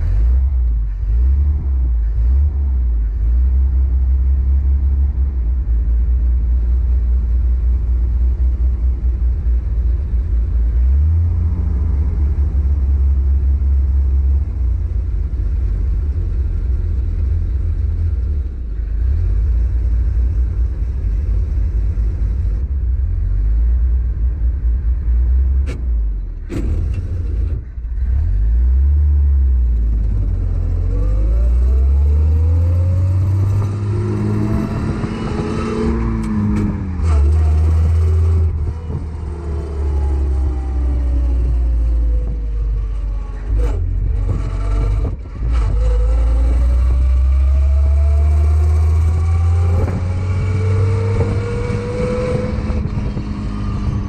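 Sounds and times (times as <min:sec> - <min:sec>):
car engine droning: 0:00.0 - 0:54.0.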